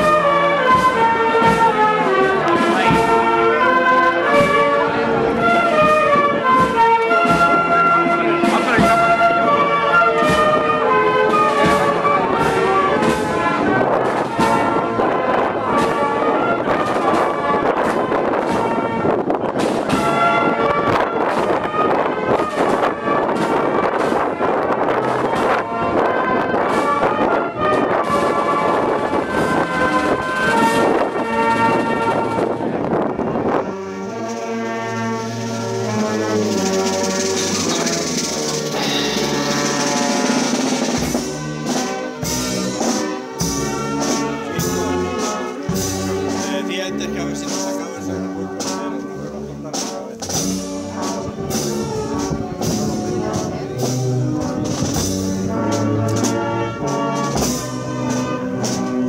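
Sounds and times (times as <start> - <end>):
drum strokes: 0.0 - 3.6, 4.3 - 14.8, 33.6 - 59.0
brass band playing a march: 0.0 - 59.0
cymbals: 0.0 - 59.0.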